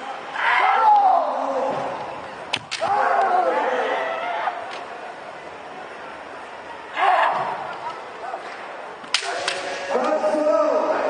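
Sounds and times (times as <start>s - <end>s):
bamboo sword strikes cracking: 2.5s - 3.0s, 9.1s - 9.9s.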